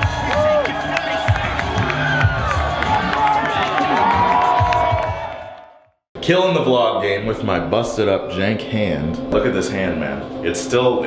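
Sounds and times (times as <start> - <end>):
music with steady beat: 0.0 - 5.3
crowd cheering and shouting: 0.0 - 5.9.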